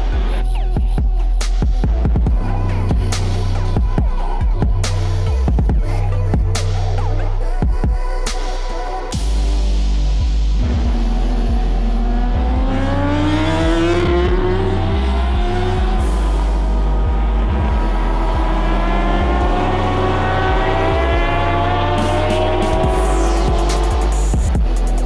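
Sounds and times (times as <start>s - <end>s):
music with heavy bass beat: 0.0s - 25.0s
racing motorcycle engine revving: 10.6s - 25.0s.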